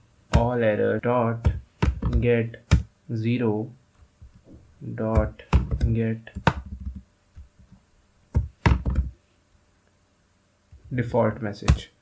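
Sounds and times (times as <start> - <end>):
computer keyboard keystrokes: 5.2 - 7.0.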